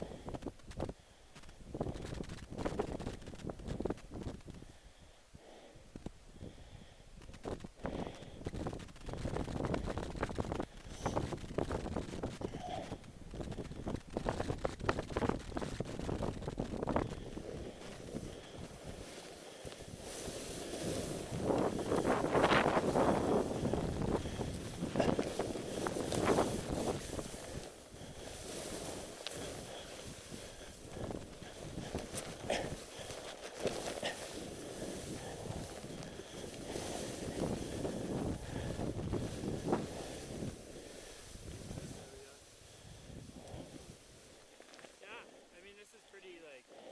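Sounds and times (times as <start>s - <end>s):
wind buffeting microphone: 1.6s - 4.8s, 6.0s - 44.4s
snowboard carving through powder: 8.6s - 45.0s.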